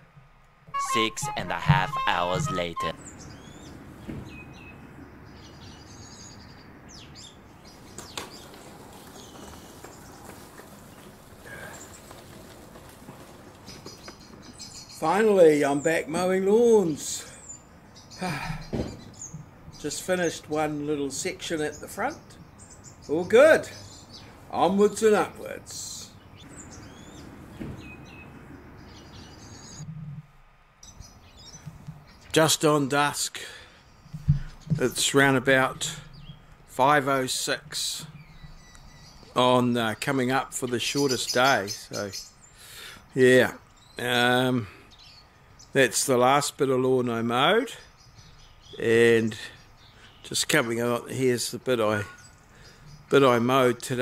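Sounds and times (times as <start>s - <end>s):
birds chirping faintly: 0.0s - 54.0s
outdoor background hiss: 0.0s - 54.0s
low wind rumble: 26.1s - 32.2s.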